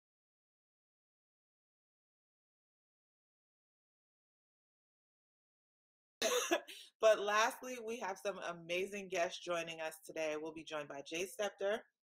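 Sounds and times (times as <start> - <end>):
person coughing: 6.2 - 6.8.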